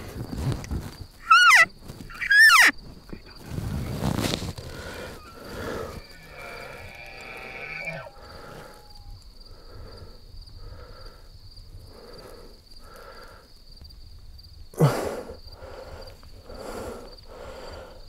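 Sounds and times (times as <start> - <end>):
elk mews: 1.2 - 2.8, 3.4 - 9.2
drawn-out animal call: 1.2 - 9.2.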